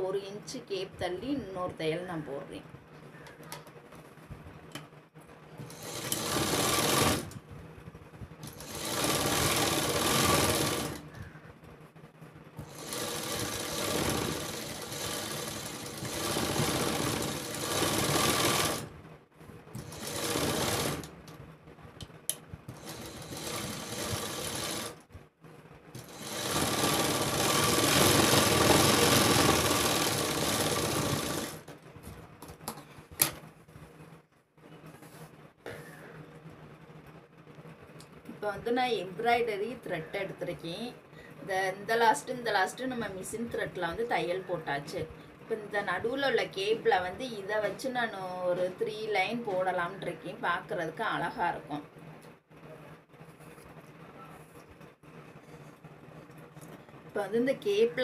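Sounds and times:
sewing machine stitching: 5.6s - 7.4s, 8.4s - 11.1s, 12.6s - 18.9s, 19.8s - 21.1s, 22.7s - 25.0s, 26.0s - 31.7s.

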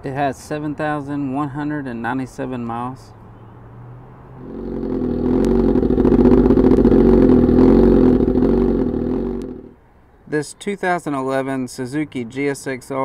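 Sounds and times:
motorcycle engine running loud: 4.4s - 9.8s.

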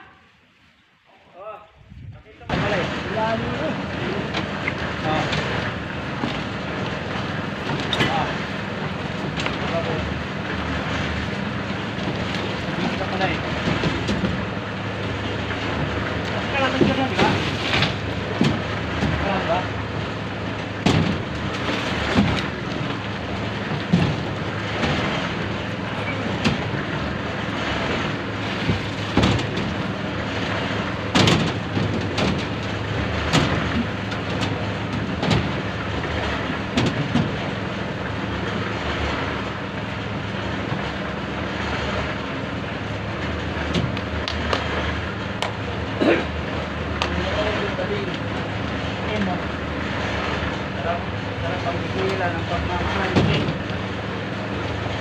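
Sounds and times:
buckets clanking on steel rebar: 15.8s - 19.9s.

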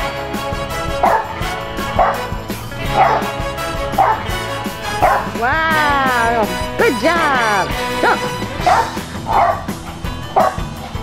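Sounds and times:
background music: 0.0s - 11.0s
dog barking: 1.0s - 1.3s, 1.9s - 2.3s, 2.9s - 3.3s, 4.0s - 4.3s, 5.0s - 5.4s, 8.0s - 9.7s, 10.3s - 10.7s.

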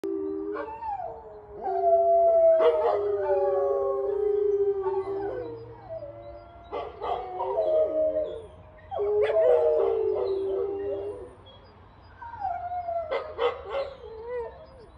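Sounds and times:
dogs howling together: 0.0s - 11.6s, 12.2s - 14.9s.

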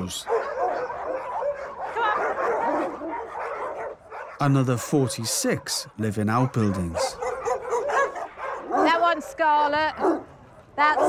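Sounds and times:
many dogs barking: 0.0s - 11.0s.

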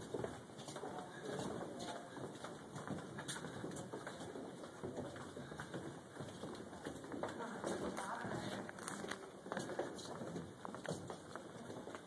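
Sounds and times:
footsteps on wooden boardwalk: 0.0s - 12.0s.

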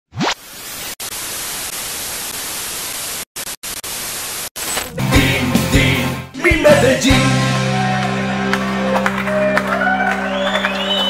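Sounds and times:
television static hiss: 0.4s - 4.9s.

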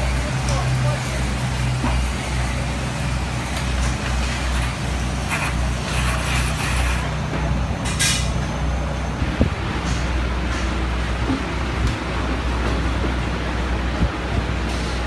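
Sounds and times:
low mechanical hum: 0.0s - 15.0s.

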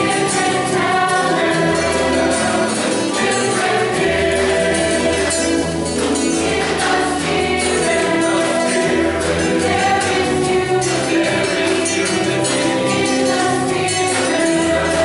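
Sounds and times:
mixed choir singing: 0.0s - 15.0s.

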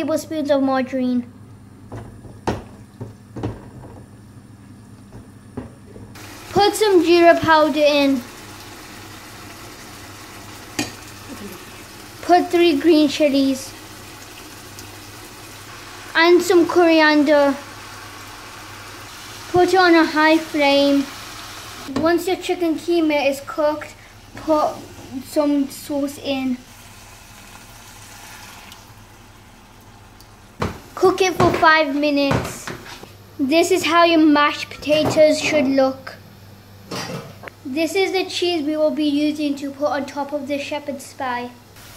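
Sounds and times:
meat sizzling in a pot: 6.2s - 21.9s, 26.0s - 31.8s.

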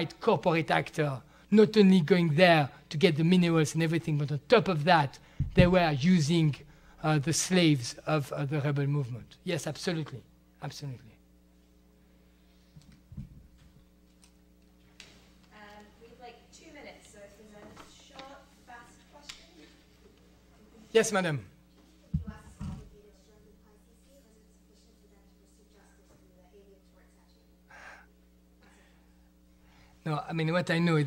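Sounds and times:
electrical hum: 0.0s - 31.0s
low thump at lectern: 5.4s - 5.8s.

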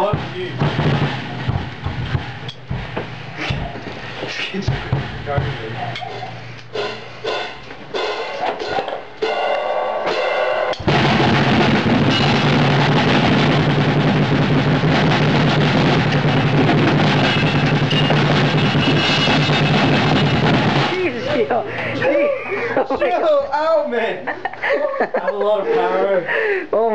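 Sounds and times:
acoustic drum kit playing: 0.0s - 23.1s.

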